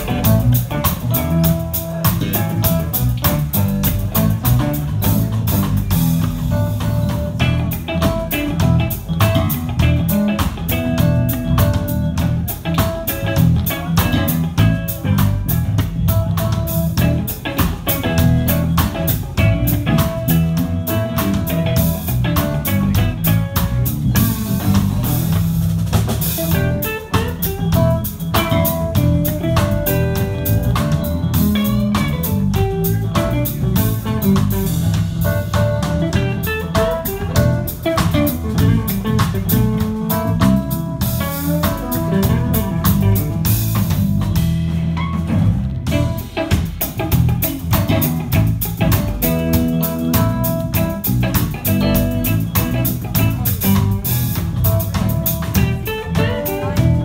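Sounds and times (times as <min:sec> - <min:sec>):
drum kit: 0:00.0 - 0:57.0
electric bass: 0:00.0 - 0:57.0
electric guitar: 0:00.0 - 0:57.0
keyboard: 0:00.0 - 0:57.0.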